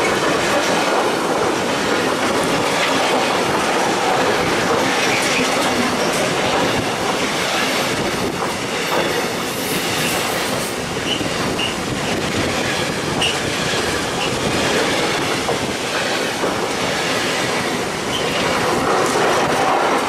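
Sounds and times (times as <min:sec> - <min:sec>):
train wheels rumbling on rail: 0:00.0 - 0:20.0
train wheel squeals: 0:07.4 - 0:11.8, 0:13.1 - 0:13.5, 0:18.0 - 0:18.6.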